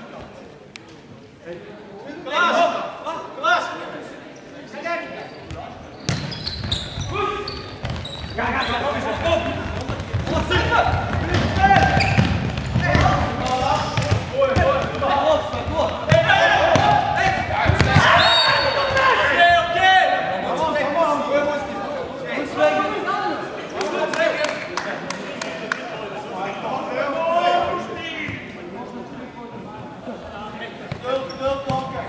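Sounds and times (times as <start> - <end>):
players shouting: 8.4 - 21.8
referee's whistle: 18.0 - 19.0.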